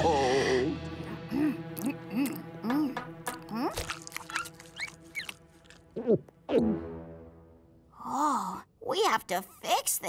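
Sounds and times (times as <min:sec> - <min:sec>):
cartoon squeaks: 0:03.7 - 0:05.4.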